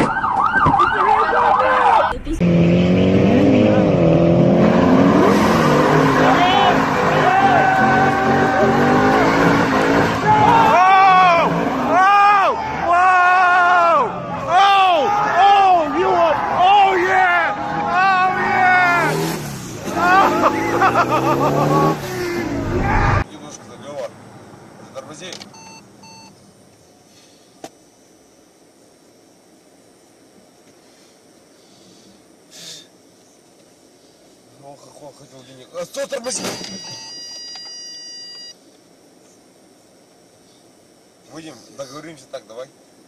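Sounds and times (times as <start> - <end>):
high-pitched electronic beep: 36.2 - 38.6.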